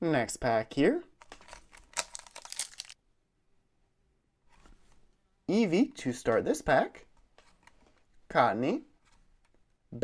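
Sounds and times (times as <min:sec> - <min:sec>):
foil wrapper crinkling: 0:01.2 - 0:03.0.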